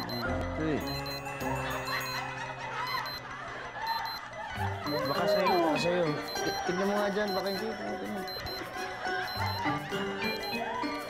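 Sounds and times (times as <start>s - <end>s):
wristwatch alarm beeping: 0.0s - 10.7s
soft background music: 0.0s - 11.0s.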